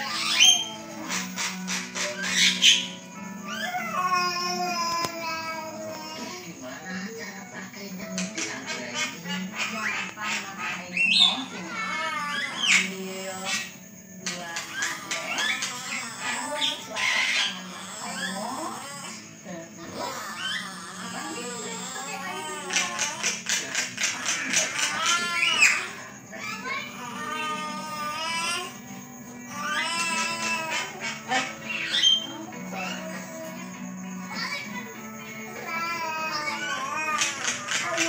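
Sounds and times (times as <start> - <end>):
bird chattering: 0.0 - 3.7, 8.0 - 27.7, 29.5 - 35.8
bird whistling: 0.0 - 3.8, 30.8 - 33.1
background music: 0.0 - 38.0.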